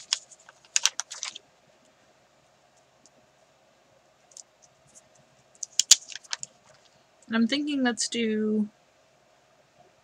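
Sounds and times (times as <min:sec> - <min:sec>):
sticker sheet crinkling: 0:00.0 - 0:01.4, 0:05.6 - 0:06.9.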